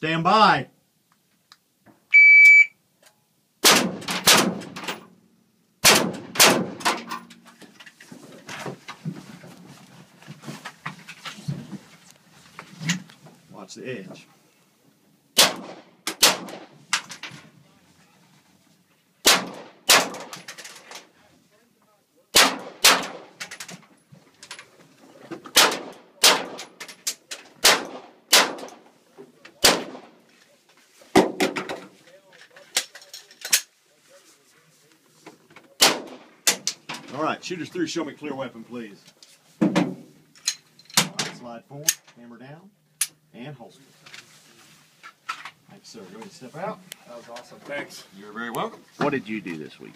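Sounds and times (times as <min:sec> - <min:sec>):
rifle shots: 0:03.6 - 0:05.0, 0:05.8 - 0:07.0, 0:15.4 - 0:16.8, 0:19.2 - 0:20.4, 0:22.3 - 0:23.4, 0:25.5 - 0:26.8, 0:27.6 - 0:28.8, 0:29.6 - 0:30.2, 0:35.8 - 0:36.6
knocks and shuffling: 0:06.9 - 0:15.2, 0:16.6 - 0:19.2, 0:23.3 - 0:25.6, 0:28.6 - 0:42.3, 0:43.0 - 0:49.9.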